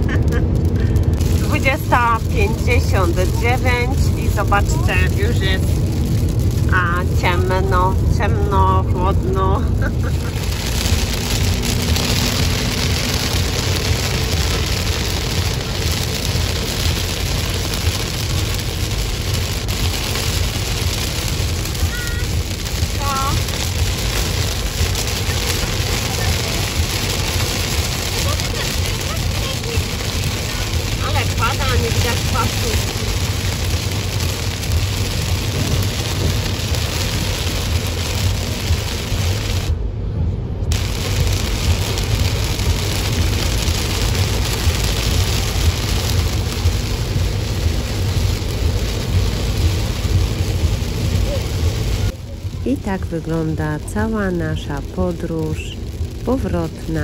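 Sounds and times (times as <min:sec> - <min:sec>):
rain and road spray hiss: 0:00.0 - 0:57.0
tyres and engine rumble: 0:00.0 - 0:57.0.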